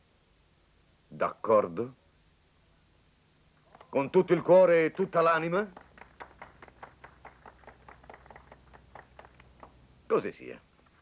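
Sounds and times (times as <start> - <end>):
people clapping softly: 3.6 - 10.0.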